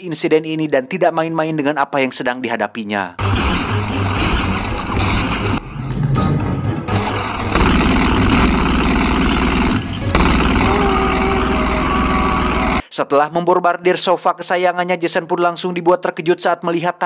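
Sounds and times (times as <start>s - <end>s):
film score music: 3.2s - 12.8s.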